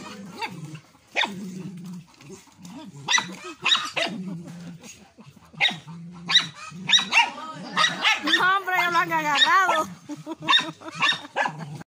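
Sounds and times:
dogs yipping and whining: 0.0s - 4.7s, 5.4s - 11.8s.

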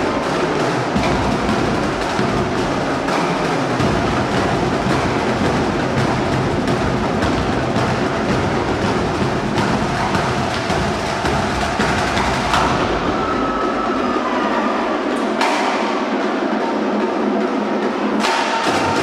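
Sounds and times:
drumline playing percussion cadence: 0.0s - 19.0s.

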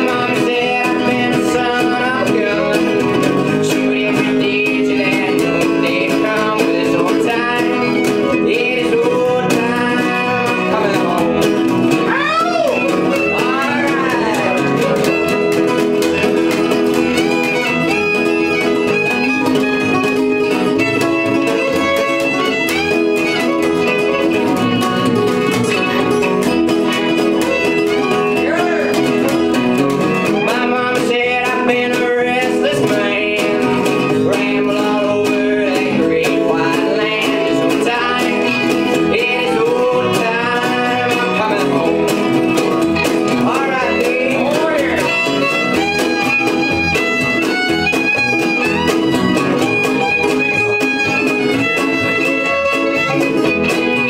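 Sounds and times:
fiddle: 0.0s - 54.0s
plucked upright bass: 0.0s - 54.0s
strummed acoustic guitar: 0.0s - 54.0s.

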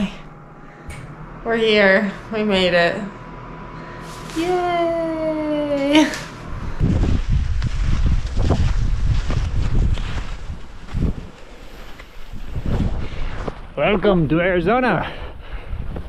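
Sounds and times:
wind buffeting microphone: 6.4s - 14.6s, 15.3s - 16.0s.

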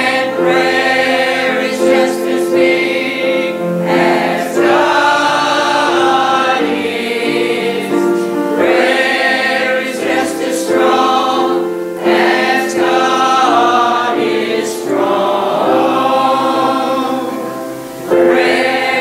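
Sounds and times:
mixed choir singing gospel song: 0.0s - 19.0s.

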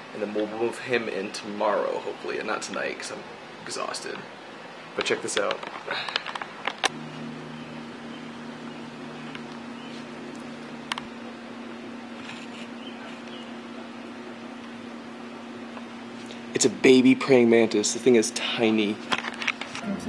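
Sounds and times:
low mechanical hum: 0.0s - 20.0s
lower second tone: 6.9s - 12.0s.

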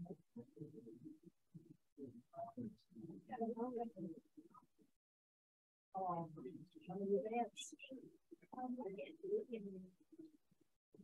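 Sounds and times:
person speaking softly: 0.0s - 4.8s.

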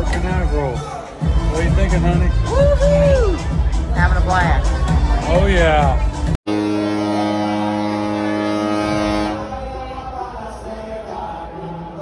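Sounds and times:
deep ship horn blast: 6.5s - 10.0s.

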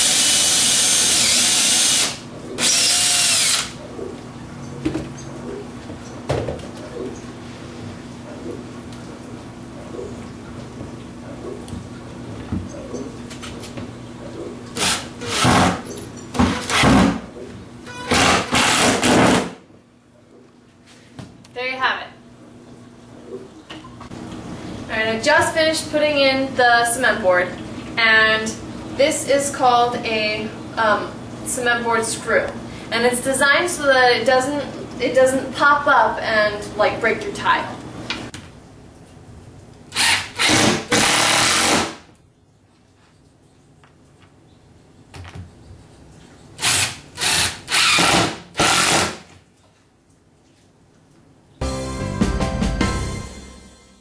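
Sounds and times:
cordless drill boring into plywood: 0.0s - 3.8s, 14.8s - 15.7s, 18.1s - 19.4s, 40.0s - 42.0s, 46.6s - 49.2s.

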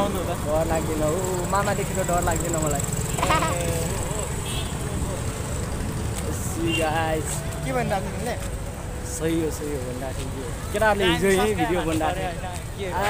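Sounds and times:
young man speaking: 0.0s - 5.4s, 6.2s - 13.0s
street noise rumble: 0.0s - 13.0s.

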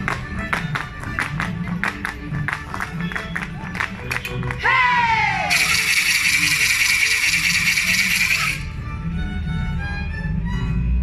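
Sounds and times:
dance music: 4.6s - 8.7s
shrill whistle blast: 5.4s - 8.7s.

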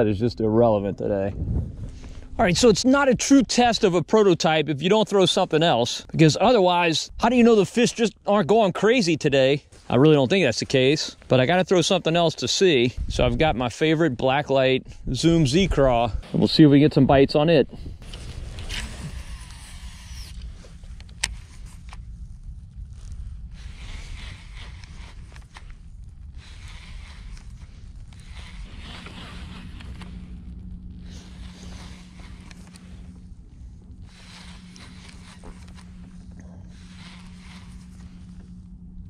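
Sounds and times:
low wind rumble: 0.0s - 3.8s, 12.4s - 39.0s
steady low hum: 0.0s - 39.0s
fishing line whirring off reel: 17.8s - 39.0s
reel handle cranking: 18.0s - 22.0s, 23.6s - 30.4s, 34.0s - 38.2s.

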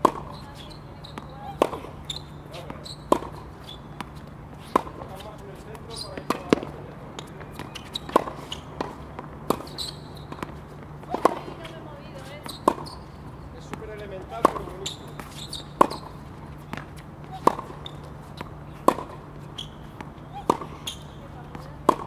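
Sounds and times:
tennis ball bouncing on hard court: 0.0s - 22.0s
tennis rackets hitting balls: 0.0s - 22.0s.

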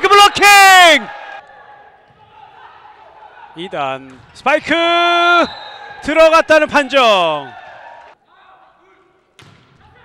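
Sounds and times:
court noise: 0.0s - 10.0s.

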